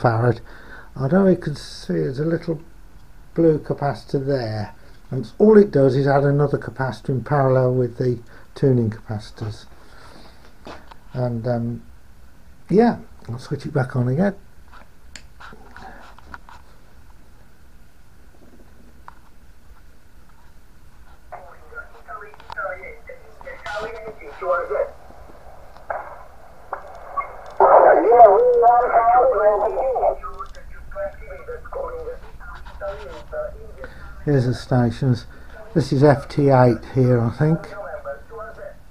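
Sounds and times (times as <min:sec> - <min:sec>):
radio static hiss: 0:21.0 - 0:38.9
tinny radio voices: 0:21.3 - 0:34.7.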